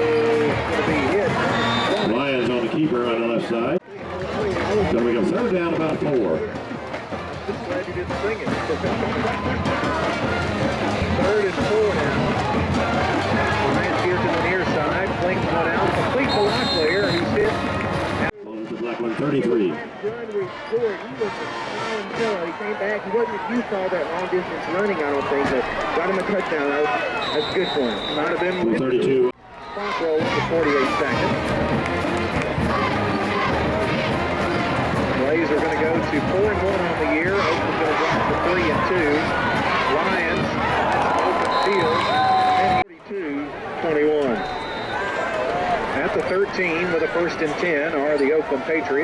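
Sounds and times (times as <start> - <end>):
crowd babble: 0.0 - 49.0
short whistle blast: 1.5 - 2.3, 16.2 - 17.3, 27.2 - 28.8, 44.4 - 45.1.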